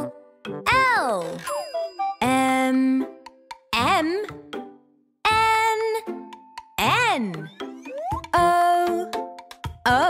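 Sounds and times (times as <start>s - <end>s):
cartoon plop sound effect: 7.4s - 8.4s
children's song singing: 8.1s - 10.0s.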